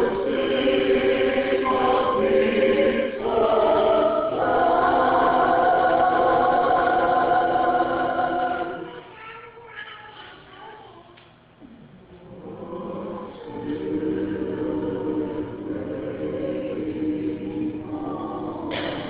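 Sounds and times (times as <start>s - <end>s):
choir singing: 0.0s - 9.0s, 12.2s - 19.0s.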